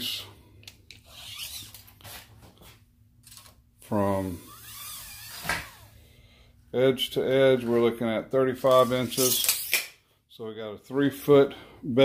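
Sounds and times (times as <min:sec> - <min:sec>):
tape measure blade rasping: 0:08.7 - 0:09.9.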